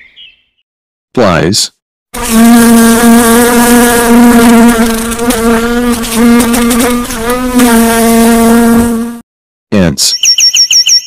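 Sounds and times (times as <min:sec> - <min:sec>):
fly buzzing: 0:02.2 - 0:09.2.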